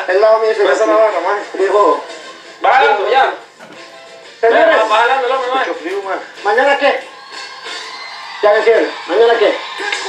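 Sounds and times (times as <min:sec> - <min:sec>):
voices from a television: 0:00.0 - 0:10.0.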